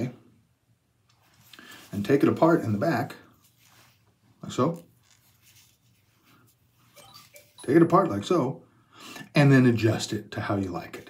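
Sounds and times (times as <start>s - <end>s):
faint cloth rustles: 1.2s - 7.6s.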